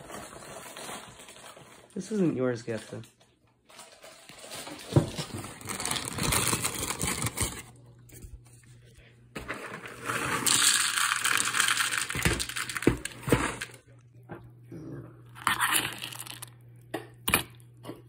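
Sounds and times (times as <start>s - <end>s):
cereal pouring into bowl: 9.6s - 13.8s, 15.4s - 16.5s.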